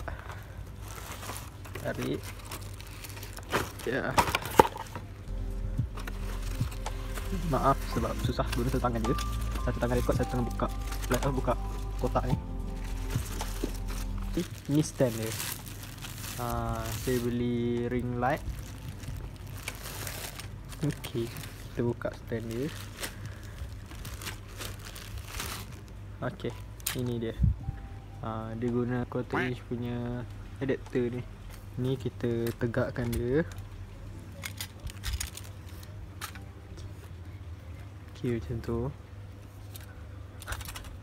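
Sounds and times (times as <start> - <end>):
plastic wrapping crinkling: 0.0 - 27.2, 34.4 - 36.5, 39.6 - 41.0
steady low hum with tones: 0.0 - 41.0.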